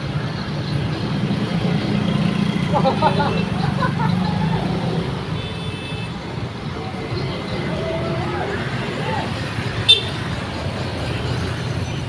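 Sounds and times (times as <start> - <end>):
scooter engines passing: 0.0 - 12.0
people's voices: 6.7 - 9.7.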